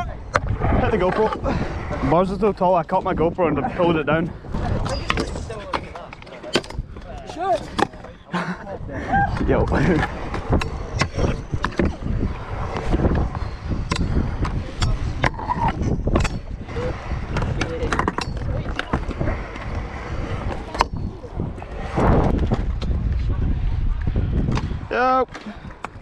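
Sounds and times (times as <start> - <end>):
scooter wheels rolling on concrete: 0.0 - 26.0.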